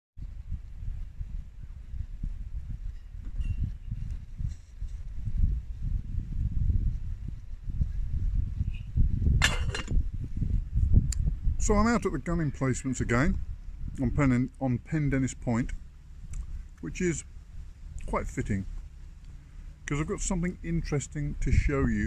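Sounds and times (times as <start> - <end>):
wind buffeting microphone: 0.2 - 22.0
metal lid clatter and scrape: 9.4 - 10.0.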